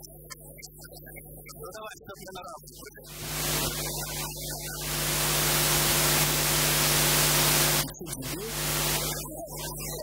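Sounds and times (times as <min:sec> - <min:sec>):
low electrical hum: 0:03.1 - 0:04.0, 0:04.8 - 0:09.2
static-like hiss: 0:03.1 - 0:09.2.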